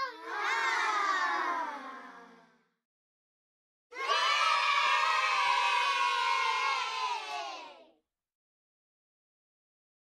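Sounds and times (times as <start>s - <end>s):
crowd cheering and shouting: 0.0s - 2.1s, 4.0s - 7.8s.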